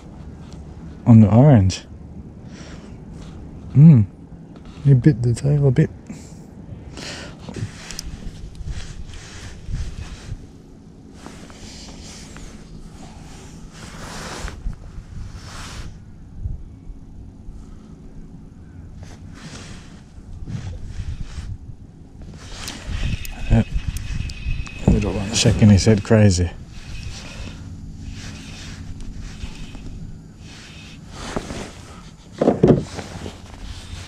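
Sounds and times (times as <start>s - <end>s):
water or wind noise: 7.5s - 11.4s, 19.7s - 34.0s
spinning reel winding: 22.6s - 26.2s, 26.8s - 27.6s.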